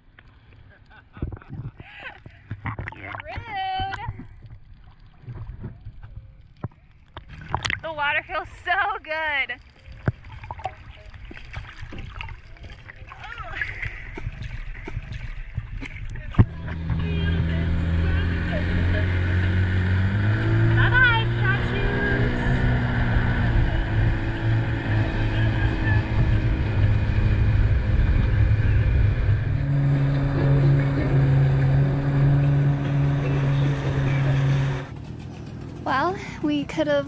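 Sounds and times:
outboard motor running: 0:01.9 - 0:37.0.

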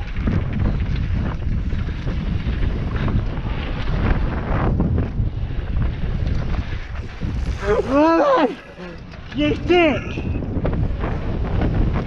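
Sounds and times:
tyres rumbling on dirt trail: 0:00.0 - 0:12.0
wind buffeting microphone: 0:00.0 - 0:12.0.

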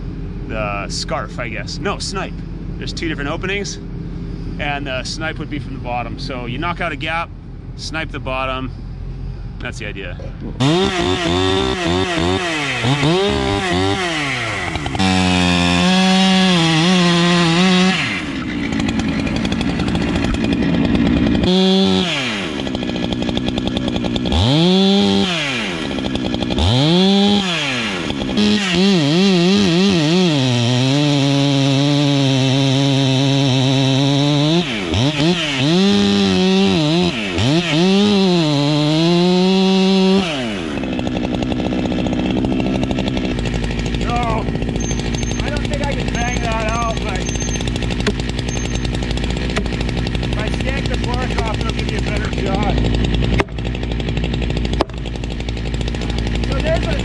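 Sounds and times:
chainsaw cutting wood: 0:10.4 - 0:57.0.

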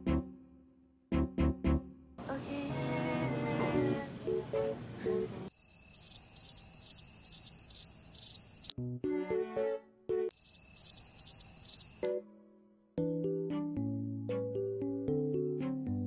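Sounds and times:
plucky keyboard music: 0:01.1 - 0:05.5, 0:13.0 - 0:16.0
cricket chirping trill: 0:05.5 - 0:08.7, 0:10.3 - 0:12.1.

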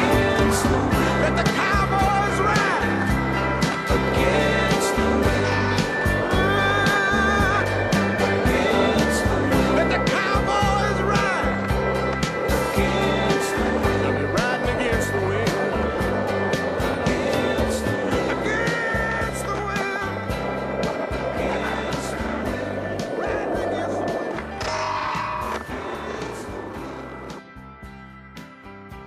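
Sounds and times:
skateboard clacking: 0:00.0 - 0:27.4
skateboard wheels rolling: 0:00.0 - 0:27.4
music soundtrack: 0:00.0 - 0:29.0.

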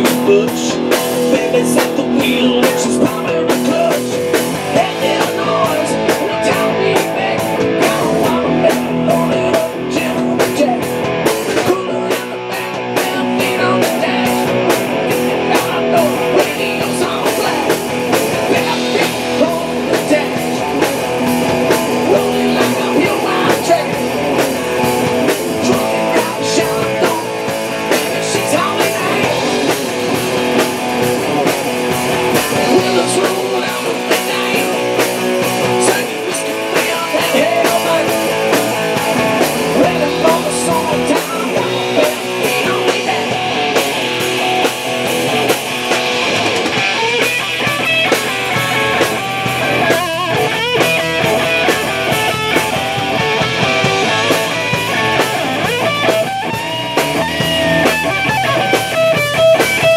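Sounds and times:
bass guitar: 0:00.0 - 0:59.9
drum kit: 0:00.0 - 0:59.9
electric guitars: 0:00.0 - 0:59.9.

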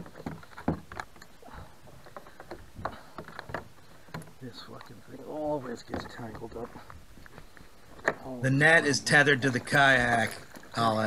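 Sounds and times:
light knocks and rattles: 0:00.0 - 0:08.3.

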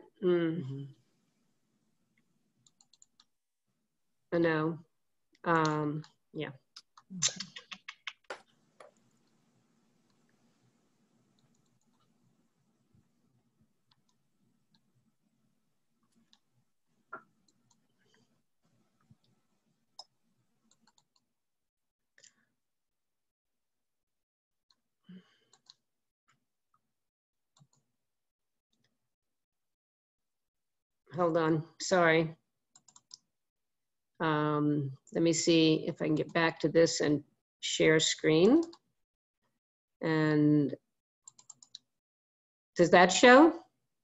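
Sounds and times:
computer mouse and key clicks: 0:02.6 - 0:03.3, 0:06.8 - 0:09.4, 0:11.3 - 0:12.1, 0:13.9 - 0:14.2, 0:20.7 - 0:21.3, 0:25.5 - 0:25.8, 0:32.8 - 0:33.3, 0:41.3 - 0:41.9
computer keyboard typing: 0:02.7 - 0:03.3, 0:32.8 - 0:33.2, 0:41.3 - 0:41.8.

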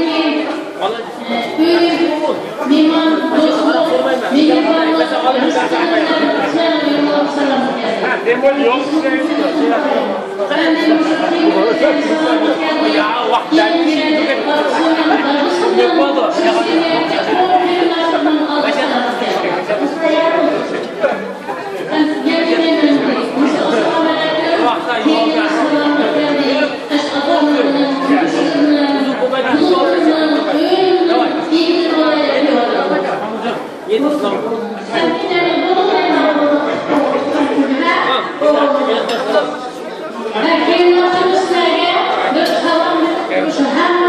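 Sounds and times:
guests chattering: 0:00.0 - 0:44.0
woman speaking over pa system: 0:01.2 - 0:20.7, 0:21.8 - 0:33.1.

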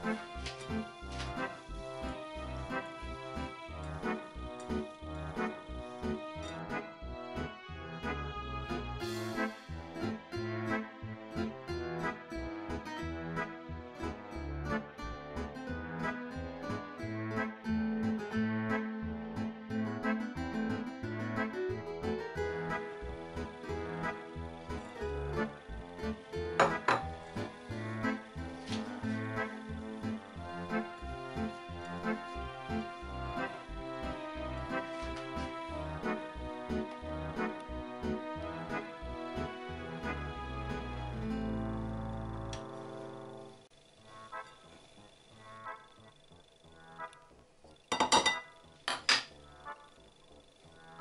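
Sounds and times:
faint background music: 0:00.0 - 0:51.0
fingers clinking ceramic bowl: 0:47.9 - 0:49.3.

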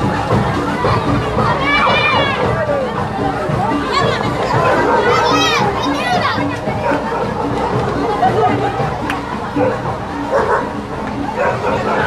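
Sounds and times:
children shouting and chattering: 0:00.0 - 0:12.0
music with steady beat: 0:00.0 - 0:12.0
children shrieking: 0:00.8 - 0:03.0, 0:03.8 - 0:08.6.

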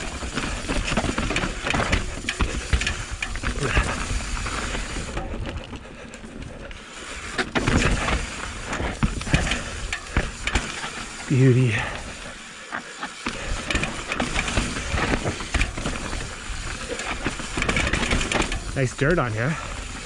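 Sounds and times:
bike rattling and knocking: 0:00.0 - 0:20.0
bike tyres rolling over dirt: 0:00.0 - 0:20.0.

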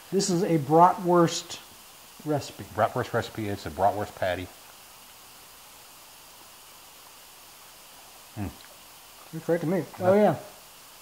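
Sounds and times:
faint steady hiss: 0:00.0 - 0:11.0
person murmuring mm: 0:08.3 - 0:08.7.

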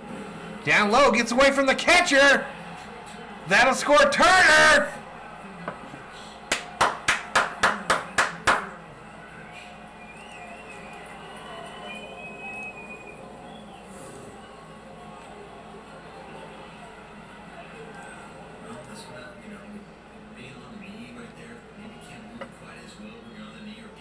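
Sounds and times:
person clapping: 0:06.5 - 0:08.7.

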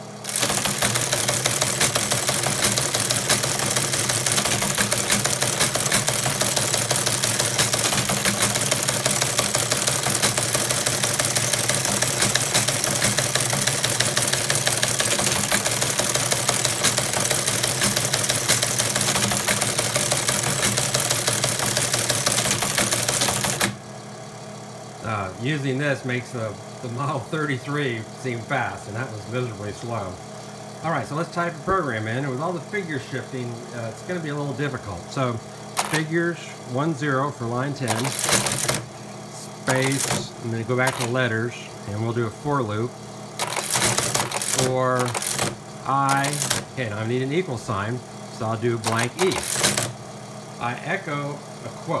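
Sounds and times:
steady motor hum: 0:00.0 - 0:52.0
teleprinter mechanical clatter: 0:00.2 - 0:23.8, 0:34.1 - 0:36.9, 0:37.6 - 0:38.9, 0:39.5 - 0:42.8, 0:43.4 - 0:50.0.

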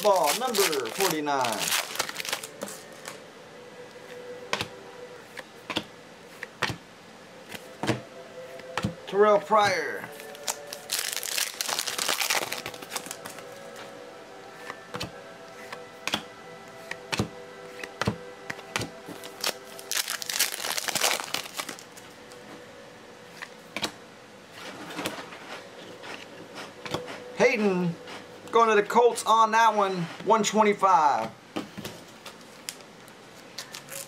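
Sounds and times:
plastic wrapper tearing and crinkling: 0:00.0 - 0:03.2, 0:10.2 - 0:13.4, 0:19.2 - 0:22.0, 0:33.6 - 0:34.0.

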